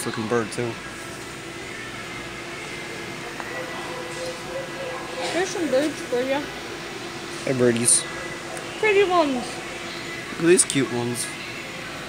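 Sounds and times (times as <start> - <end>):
ventilation hum and hiss: 0.0 - 12.0.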